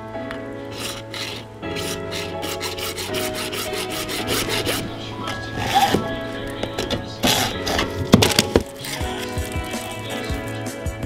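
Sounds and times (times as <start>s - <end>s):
background music: 0.0s - 11.0s
hacksaw cutting plastic pipe: 0.7s - 10.2s.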